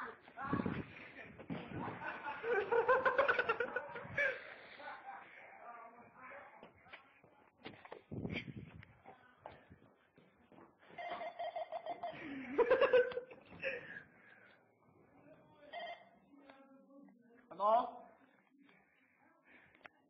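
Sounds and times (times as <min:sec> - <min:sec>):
muffled voices: 0:00.0 - 0:10.8
person laughing: 0:01.7 - 0:05.0, 0:11.0 - 0:14.0.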